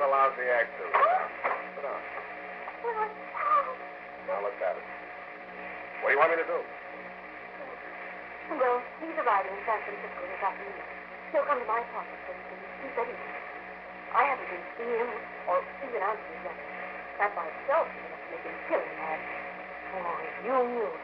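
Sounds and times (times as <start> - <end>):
old radio drama speech: 0.0 - 21.0
steady low hum: 0.0 - 21.0.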